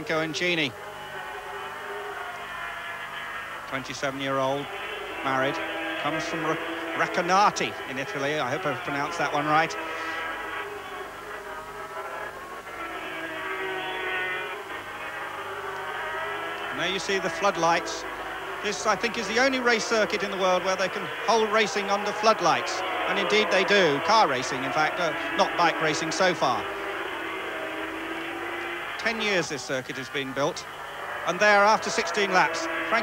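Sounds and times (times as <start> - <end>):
racing motorcycle engine: 0.0 - 33.0.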